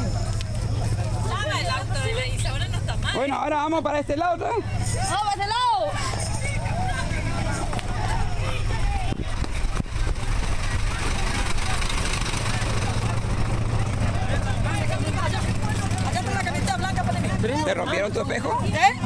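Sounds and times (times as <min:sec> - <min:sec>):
lorry engine idling: 0:00.0 - 0:19.0
people talking indistinctly: 0:00.0 - 0:19.0.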